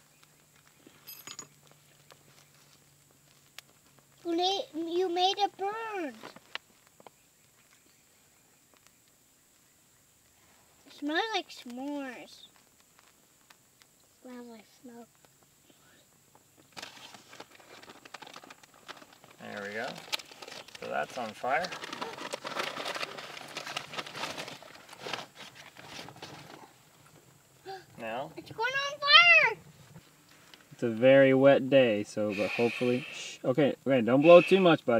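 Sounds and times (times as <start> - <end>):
faint steady hiss: 0.0 - 34.9
paper crinkling and crackling: 16.7 - 26.7.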